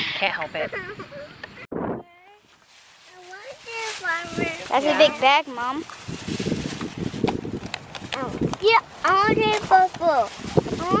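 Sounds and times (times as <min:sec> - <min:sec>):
wind buffeting microphone: 0:01.0 - 0:02.1, 0:03.4 - 0:11.0
plastic bag crinkling: 0:02.4 - 0:08.5, 0:09.1 - 0:11.0.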